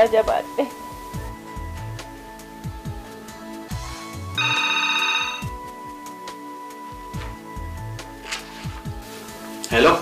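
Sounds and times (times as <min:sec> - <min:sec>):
background music: 0:00.0 - 0:10.0
telephone ringing: 0:04.4 - 0:05.6.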